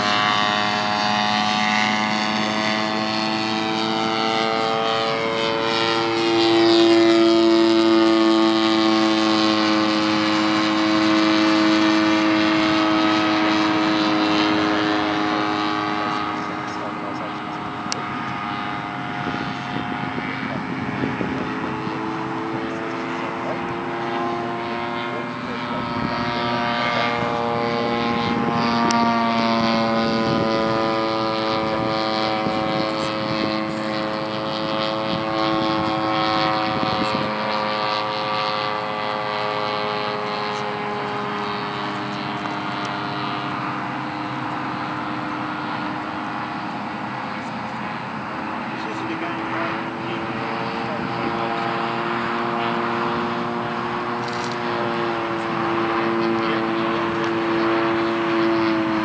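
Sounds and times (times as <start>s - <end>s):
small propeller aircraft buzzing: 0.0s - 59.0s.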